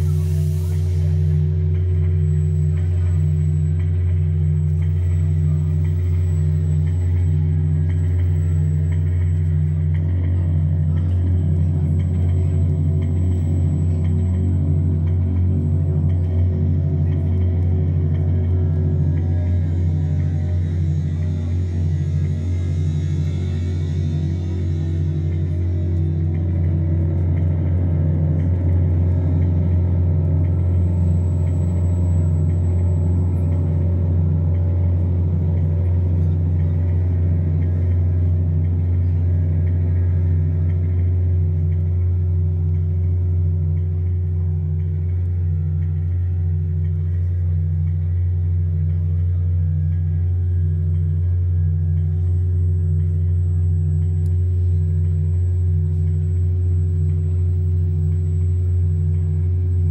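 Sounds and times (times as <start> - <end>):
deep synthesizer bass drone: 0.0 - 59.9
pulsing synthesizer note: 0.0 - 59.9.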